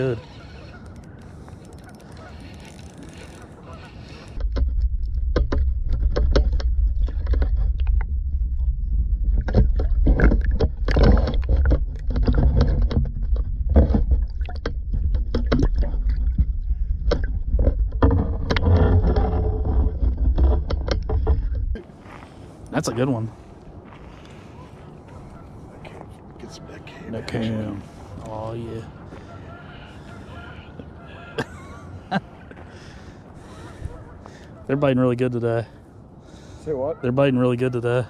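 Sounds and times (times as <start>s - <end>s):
muffled underwater rumble: 3.5s - 21.8s
knocks and clicks: 4.4s - 8.2s, 9.2s - 21.8s.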